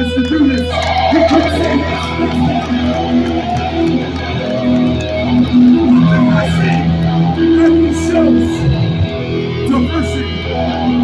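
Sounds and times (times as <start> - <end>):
bass: 0.0 - 11.0
electric guitar riff: 0.0 - 11.0.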